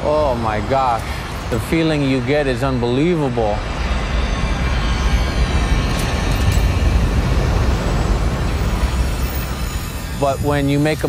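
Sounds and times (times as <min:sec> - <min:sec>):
ocean waves breaking: 0:00.0 - 0:11.0.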